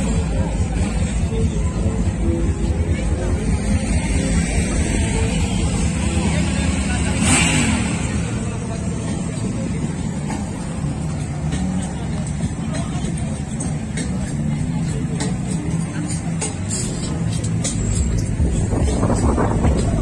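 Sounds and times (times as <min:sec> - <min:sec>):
crowd chatter: 0:00.0 - 0:20.0
motorcycle engines running: 0:00.0 - 0:20.0.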